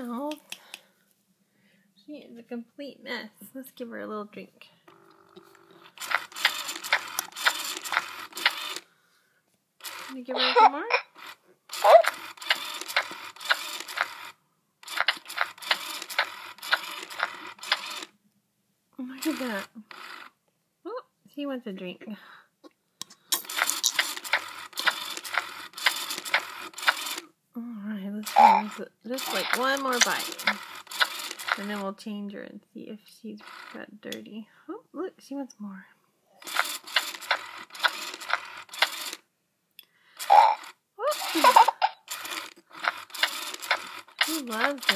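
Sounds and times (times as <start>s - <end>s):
doll mechanism clicking: 4.9s - 8.8s, 9.8s - 18.1s, 19.2s - 20.3s, 23.0s - 27.3s, 28.2s - 31.9s, 33.4s - 33.8s, 36.4s - 39.2s, 40.2s - 44.9s
toy doll mechanism whirring: 4.9s - 8.9s, 9.8s - 18.2s, 19.1s - 20.4s, 23.0s - 27.3s, 28.2s - 32.0s, 33.3s - 34.2s, 36.4s - 39.3s, 40.2s - 44.9s
toy doll munching with clicks: 14.8s - 18.0s, 40.2s - 44.9s.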